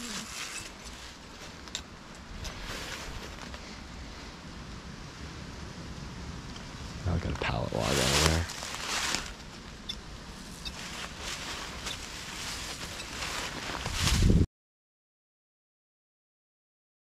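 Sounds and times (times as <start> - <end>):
rustling of dry leaves underfoot: 0.0 - 4.5, 7.1 - 14.4.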